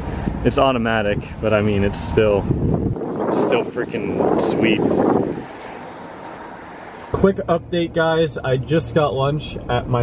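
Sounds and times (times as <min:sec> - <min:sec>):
wind on microphone: 0:01.1 - 0:05.8.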